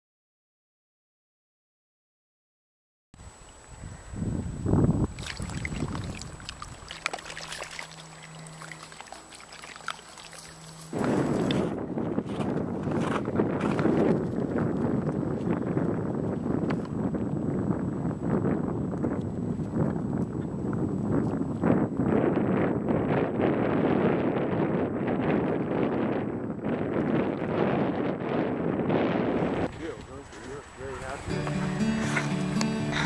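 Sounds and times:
wind noise on microphone: 3.2s - 33.0s.

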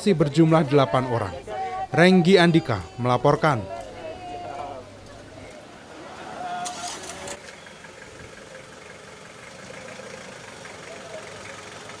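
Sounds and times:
people's voices: 0.0s - 7.4s
van engine running at low speed: 6.7s - 12.0s.

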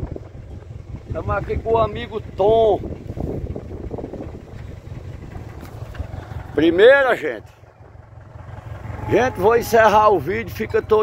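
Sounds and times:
wind buffeting microphone: 0.0s - 6.6s.

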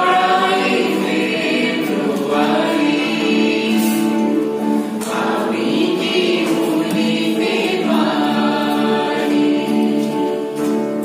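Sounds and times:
acoustic guitars: 0.0s - 11.0s
group of people singing: 0.0s - 11.0s.

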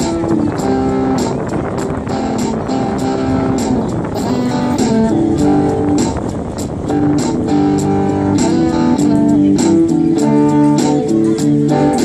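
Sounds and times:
electric guitar melody: 0.0s - 12.0s.

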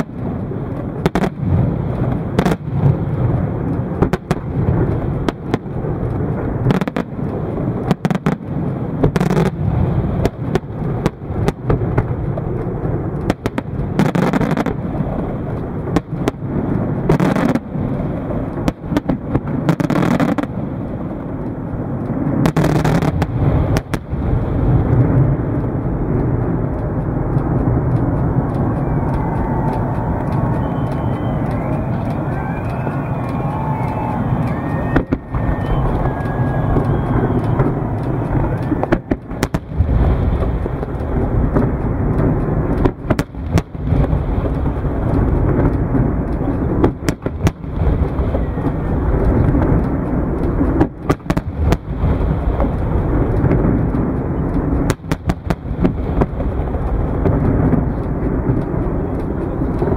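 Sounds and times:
fireworks sharp bangs: 0.0s - 59.9s
low rumble of distant bursts: 0.0s - 59.9s.

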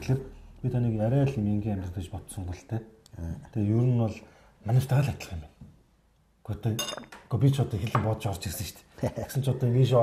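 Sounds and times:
ceramic bowl clinking on glass: 6.8s - 7.3s.

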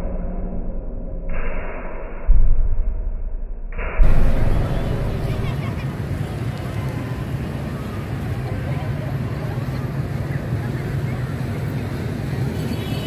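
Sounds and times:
indistinct voices: 4.0s - 13.0s
motorbike and car traffic: 4.3s - 13.0s.

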